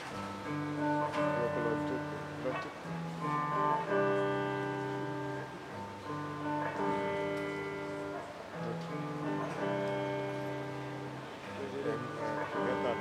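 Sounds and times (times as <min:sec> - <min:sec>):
guitar plucked chords: 0:00.0 - 0:13.0.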